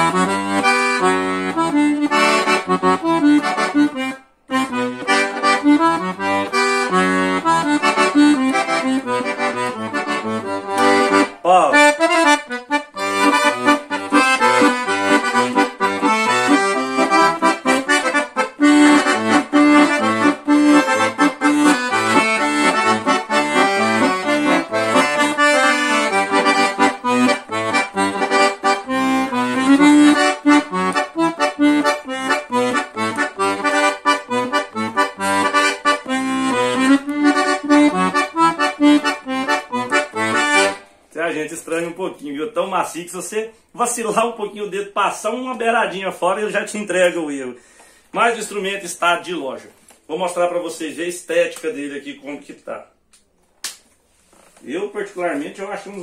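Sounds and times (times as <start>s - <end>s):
accordion melody: 0.0s - 52.4s
accordion bass notes: 0.0s - 53.0s, 54.6s - 56.0s.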